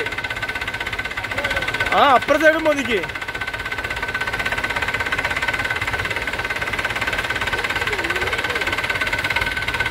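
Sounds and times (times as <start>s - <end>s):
tractor diesel engine running: 0.0s - 9.9s.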